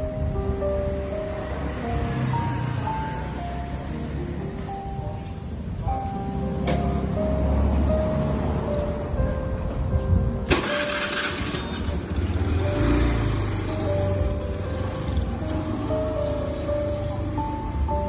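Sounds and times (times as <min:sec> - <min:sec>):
background music held notes: 0:00.0 - 0:18.0.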